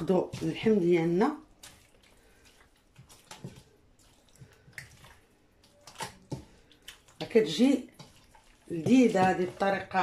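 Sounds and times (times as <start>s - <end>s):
wet squelches of meat: 0.0s - 9.8s.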